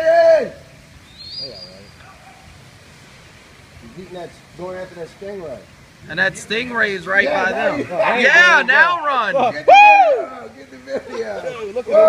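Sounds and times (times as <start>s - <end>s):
distant surf: 0.0s - 12.0s
faint beach hiss: 0.0s - 12.0s.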